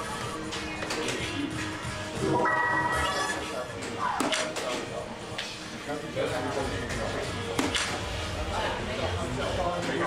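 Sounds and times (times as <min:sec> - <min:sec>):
background music: 0:00.0 - 0:10.0
dart striking dartboard: 0:07.5 - 0:08.0.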